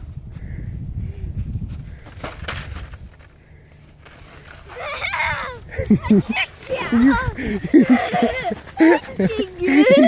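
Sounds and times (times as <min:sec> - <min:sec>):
wind buffeting microphone: 0:00.0 - 0:03.2, 0:05.1 - 0:10.0.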